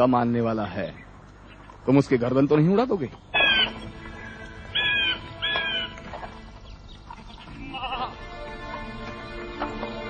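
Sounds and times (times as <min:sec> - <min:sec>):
soft background music: 0:03.4 - 0:10.0
animal bleats: 0:07.5 - 0:08.2.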